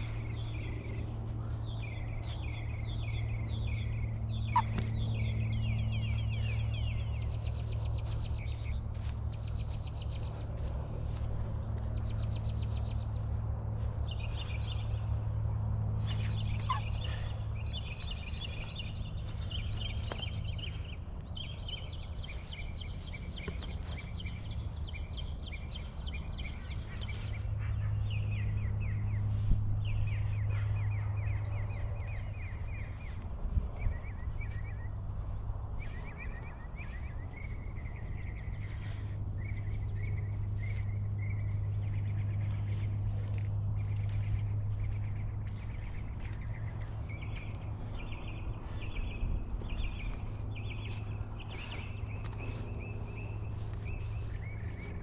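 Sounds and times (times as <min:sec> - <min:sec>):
steady low hum: 0:00.0 - 0:55.0
rapid trilling animal calls: 0:04.3 - 0:05.6, 0:16.0 - 0:17.4.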